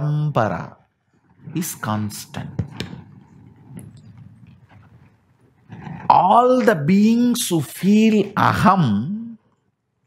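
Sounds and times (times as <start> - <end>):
man speaking: 0.0 - 0.8, 1.4 - 2.9, 6.0 - 9.4
faint room noise: 0.0 - 10.0.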